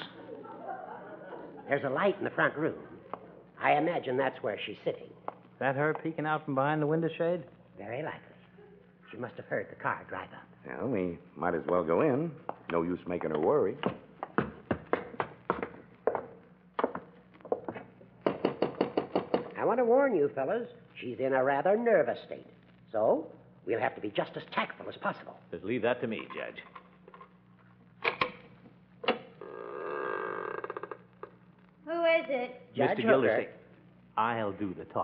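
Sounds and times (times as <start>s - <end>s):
footsteps of people walking: 12.4s - 18.2s.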